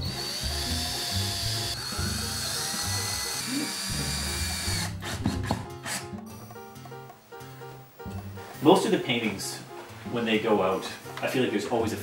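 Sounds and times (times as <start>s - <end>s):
cordless drill driving screws: 0.0s - 6.1s.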